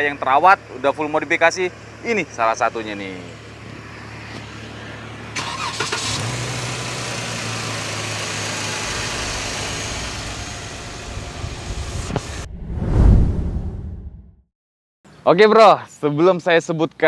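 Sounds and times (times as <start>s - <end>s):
car engine idling: 0.1s - 12.4s
brief burst of noise: 12.4s - 14.3s.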